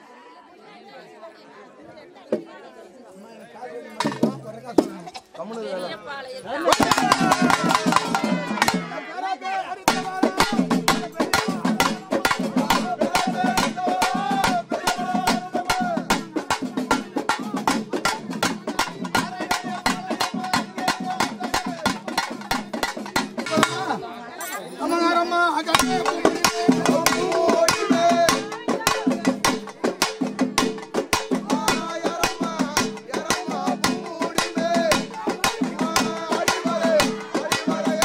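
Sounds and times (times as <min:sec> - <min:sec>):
drums beaten rapidly with sticks: 0:04.0 - 0:05.2, 0:06.6 - 0:09.0, 0:09.8 - 0:24.0, 0:25.7 - 0:38.0
person chanting: 0:24.8 - 0:29.5.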